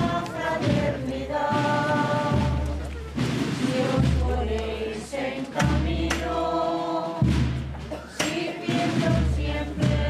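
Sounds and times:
group singing a slow hymn: 0.0 - 10.0.

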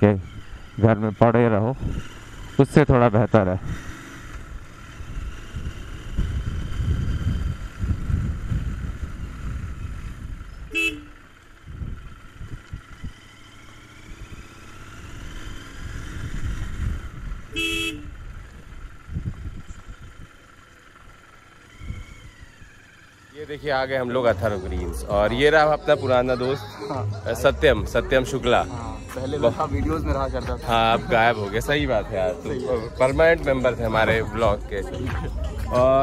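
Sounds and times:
motorcycle engine rumble: 0.0 - 36.0
wind on microphone: 5.6 - 10.5
short horn beeps: 10.6 - 11.3, 17.5 - 18.3.

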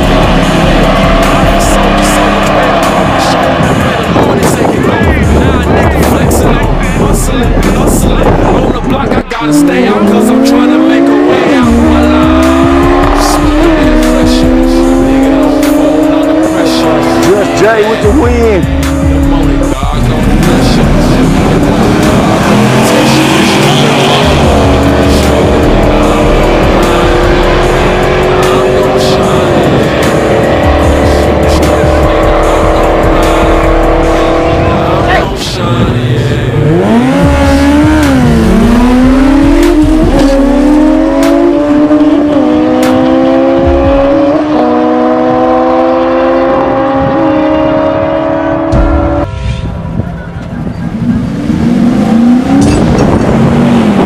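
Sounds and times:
drag racing engines accelerating: 0.0 - 54.0.

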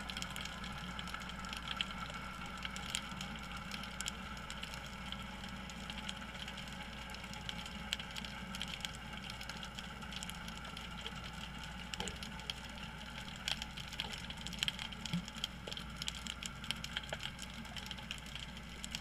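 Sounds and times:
sharp clicks and crackles: 0.0 - 19.0
underwater low hum: 0.0 - 19.0.

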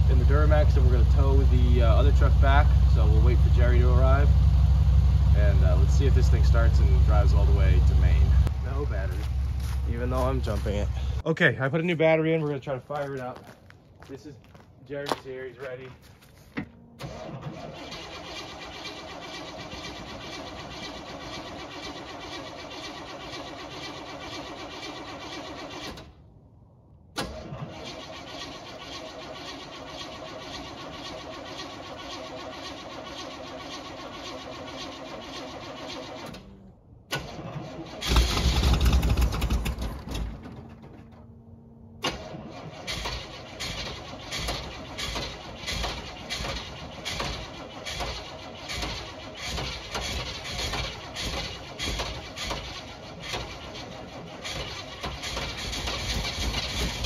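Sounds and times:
engine running unevenly: 0.0 - 11.2, 27.3 - 57.0
engine starter cranking: 17.0 - 26.3, 27.1 - 41.3, 42.0 - 57.0.

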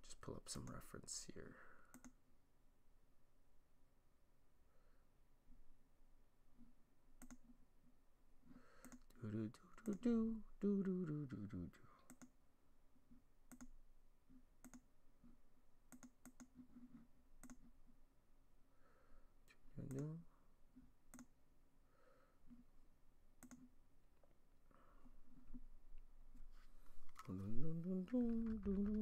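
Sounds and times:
computer mouse clicks: 1.9 - 2.2, 6.6 - 7.6, 8.7 - 10.1, 12.0 - 12.4, 13.1 - 17.8, 19.8 - 20.2, 21.1 - 21.4, 23.4 - 24.3.

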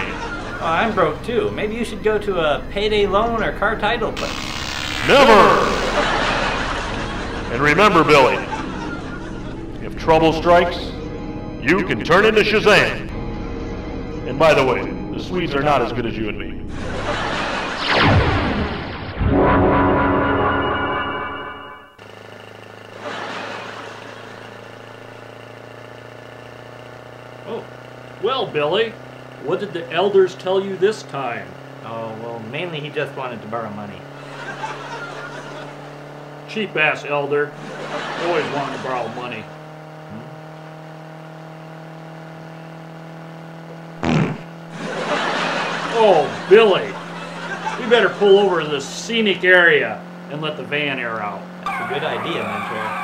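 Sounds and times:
van engine humming: 0.0 - 17.9, 19.7 - 53.0
synth music: 0.0 - 22.0
fart: 4.2 - 6.2, 40.1 - 40.3, 44.0 - 44.6.

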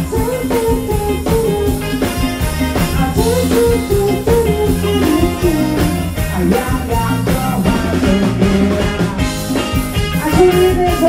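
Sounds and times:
live band dance music: 0.0 - 11.0
man singing: 0.0 - 11.0.

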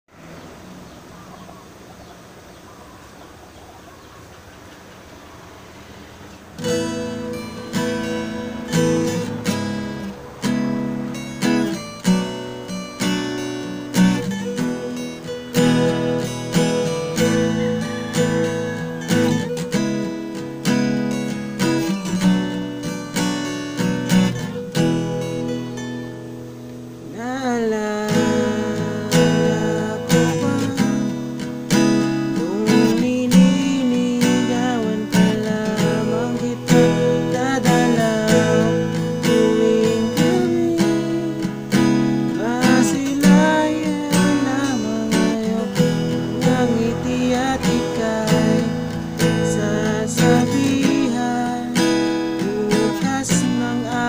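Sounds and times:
acoustic guitar strumming chords: 0.1 - 54.0
faint steady hiss: 0.1 - 54.0.

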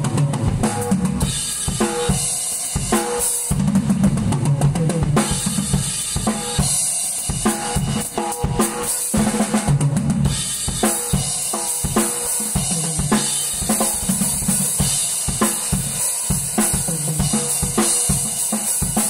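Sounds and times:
drum kit played fast: 0.0 - 19.0.

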